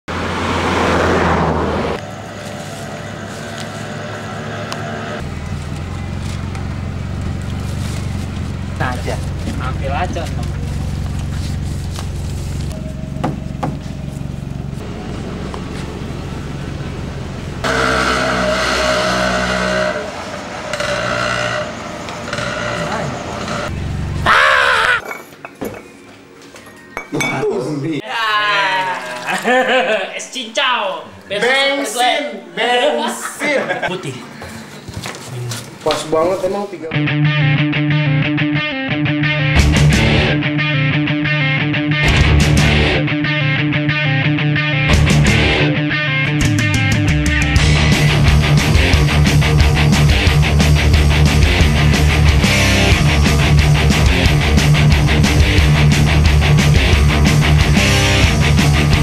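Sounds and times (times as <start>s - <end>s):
vehicle engine hum: 0.1s - 24.6s, 46.4s - 59.0s
person calling out: 28.0s - 29.4s.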